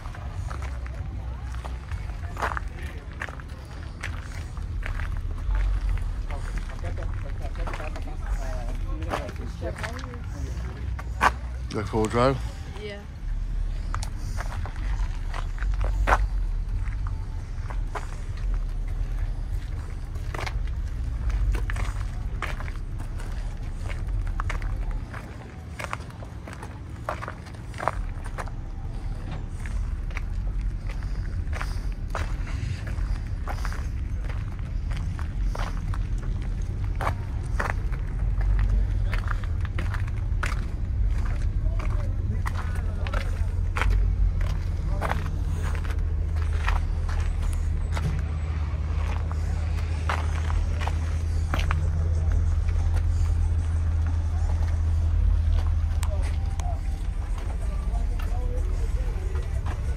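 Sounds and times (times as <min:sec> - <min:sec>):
footsteps on asphalt: 0:00.0 - 0:59.9
low microphone rumble: 0:00.0 - 0:59.9.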